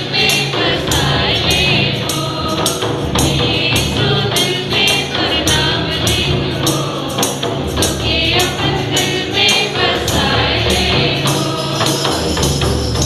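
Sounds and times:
group singing gospel song: 0.0s - 13.0s
hand drums beating: 0.0s - 13.0s.

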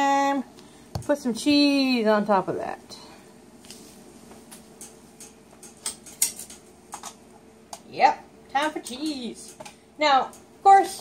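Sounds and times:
room fan humming: 0.0s - 11.0s
kitchen things clinking: 4.8s - 7.2s.

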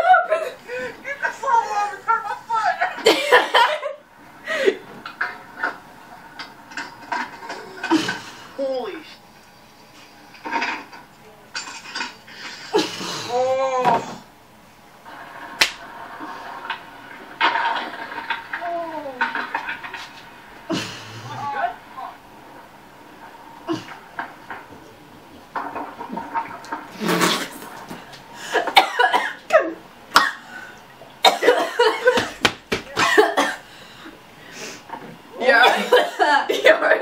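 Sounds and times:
people exclaiming: 21.2s - 22.2s.

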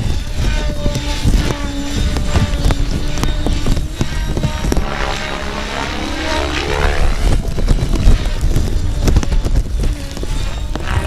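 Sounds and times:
model helicopter rotor and motor: 0.0s - 11.0s.

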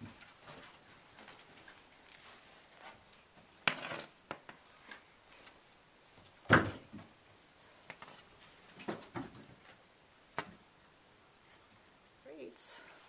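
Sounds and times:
faint rustling: 0.0s - 3.4s.

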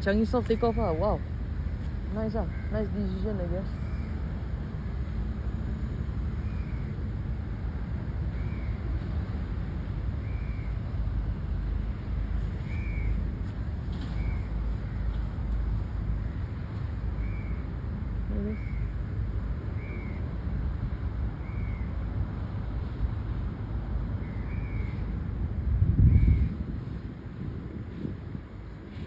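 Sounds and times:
steady low rumble: 0.0s - 29.0s
bird call: 12.6s - 13.2s.

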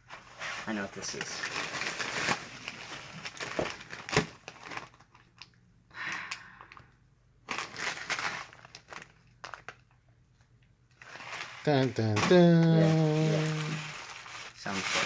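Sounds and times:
plastic packets crinkling: 0.0s - 10.0s, 10.9s - 15.0s.

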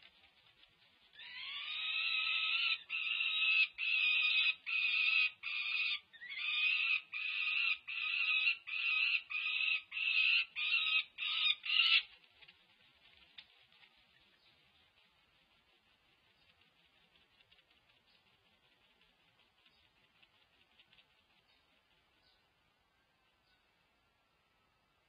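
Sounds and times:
falcon chick wailing: 1.1s - 12.1s.

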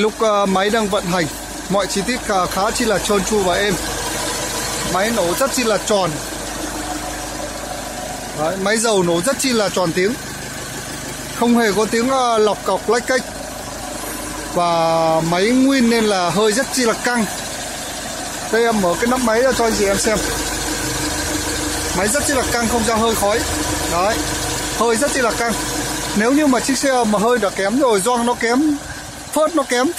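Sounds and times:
diesel engine idling: 0.0s - 29.9s
steady whine: 0.0s - 29.9s.

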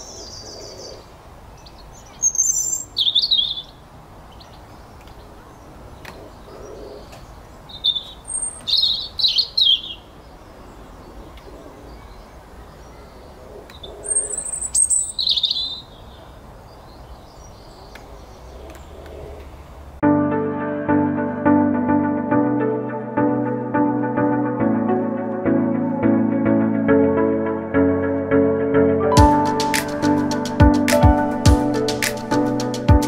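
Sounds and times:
small bird singing: 0.0s - 19.1s.

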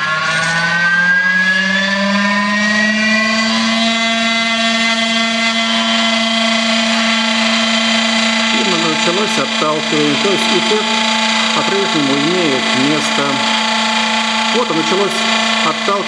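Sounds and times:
electric motor whine: 0.0s - 16.0s.

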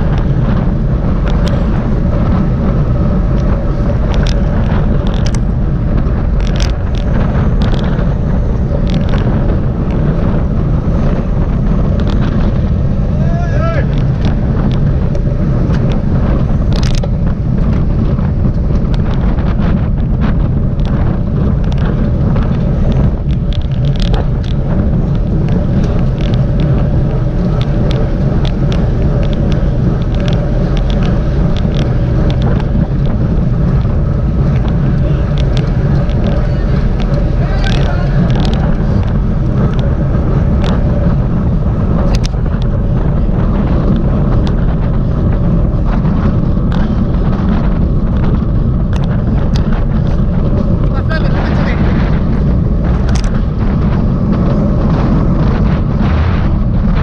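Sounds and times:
bike clicks and knocks: 0.0s - 13.0s, 13.8s - 57.0s
wind buffeting microphone: 0.0s - 57.0s.

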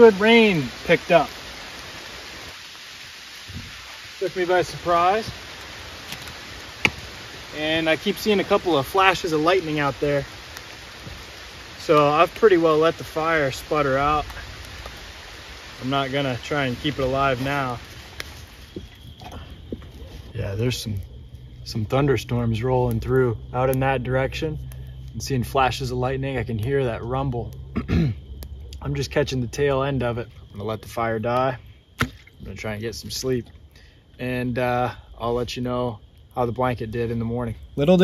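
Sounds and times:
heavy rain falling: 0.0s - 21.0s.

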